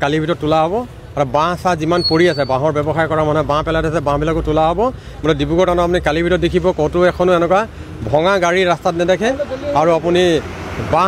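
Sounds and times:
man speaking into microphones: 0:00.0 - 0:11.0
vehicle passing: 0:02.7 - 0:11.0.

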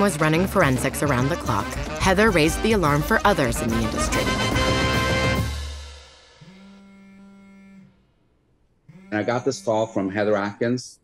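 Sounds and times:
background music: 0:00.0 - 0:06.1
smartphone vibrating on hard surface: 0:06.4 - 0:08.0, 0:08.9 - 0:09.8.

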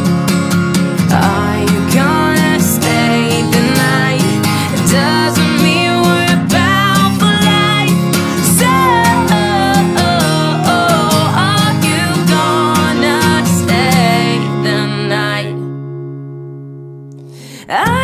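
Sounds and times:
acoustic guitar strumming: 0:00.0 - 0:18.0
woman singing: 0:01.0 - 0:15.9, 0:17.5 - 0:18.0.

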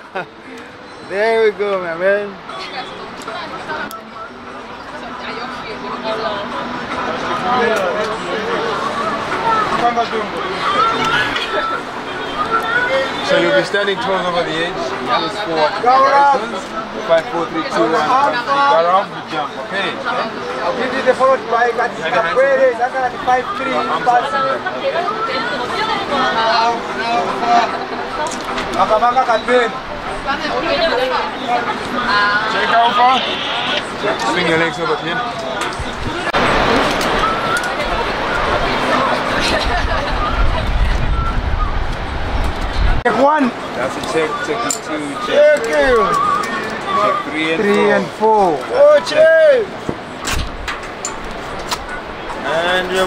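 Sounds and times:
voices talking: 0:00.0 - 0:53.0.

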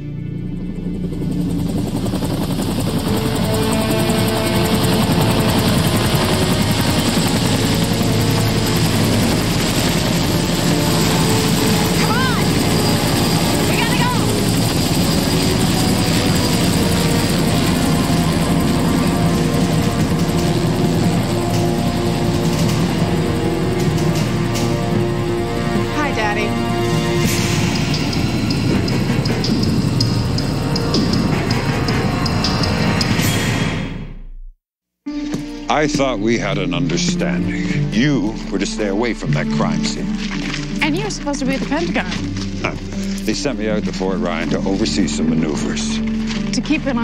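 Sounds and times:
dramatic music score: 0:00.0 - 0:34.3, 0:35.1 - 0:47.0
helicopter rotors chopping: 0:00.4 - 0:33.3, 0:35.4 - 0:47.0.

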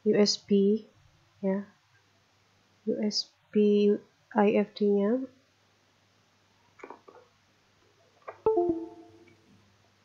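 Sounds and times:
two-note falling chime: 0:08.5 - 0:09.3.

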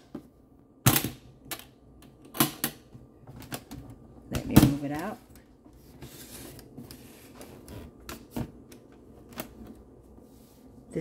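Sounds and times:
cooler being handled and opened: 0:00.0 - 0:09.9.

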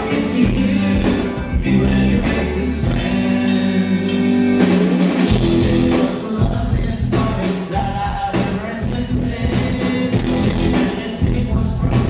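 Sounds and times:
drum kit: 0:00.0 - 0:12.0
electric guitar chords: 0:00.0 - 0:12.0
keyboard chords: 0:00.0 - 0:12.0.

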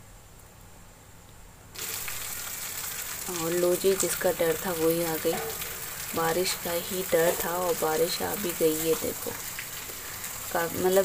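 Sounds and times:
rain on wet concrete: 0:01.8 - 0:11.0.

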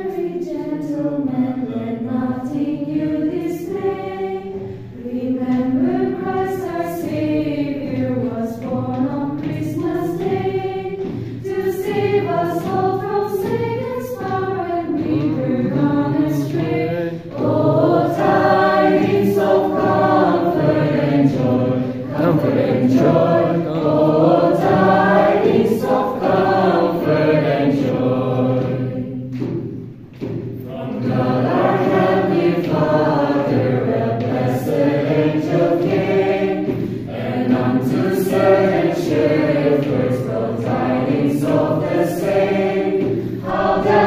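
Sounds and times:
choir of young voices singing: 0:00.0 - 0:44.0.

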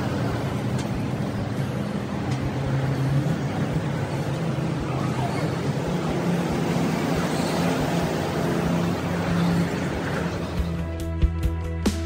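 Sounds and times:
road traffic rush: 0:00.0 - 0:12.0.

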